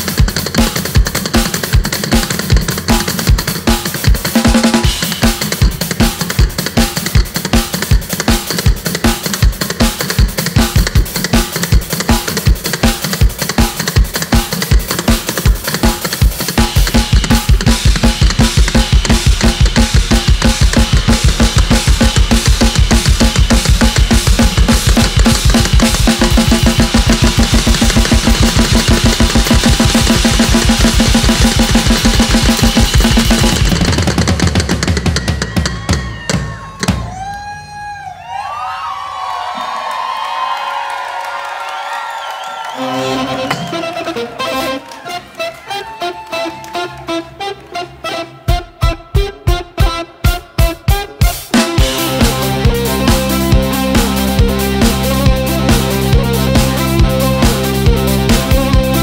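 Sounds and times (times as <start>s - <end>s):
drum kit playing: 0.0s - 37.5s, 48.1s - 59.0s
hurdy-gurdy: 42.6s - 59.0s.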